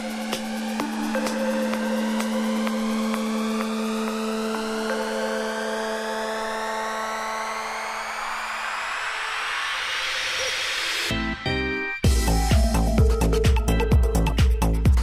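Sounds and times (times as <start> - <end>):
held low synth notes: 0.0 - 8.5
rising synth sweep: 0.0 - 13.4.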